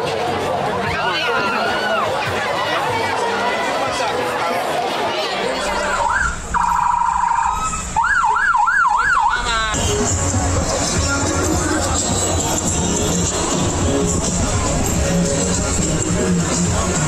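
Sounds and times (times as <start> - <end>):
crowd chatter: 0.0 - 17.0
police car siren: 5.8 - 9.7.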